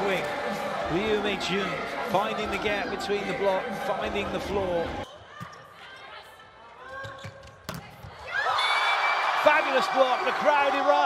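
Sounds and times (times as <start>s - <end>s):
crowd cheering: 0.0s - 4.1s, 8.2s - 11.0s.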